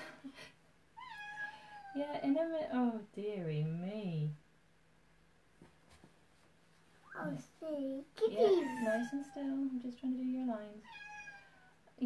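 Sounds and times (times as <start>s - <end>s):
cat meowing: 1.0s - 2.0s, 10.8s - 11.7s.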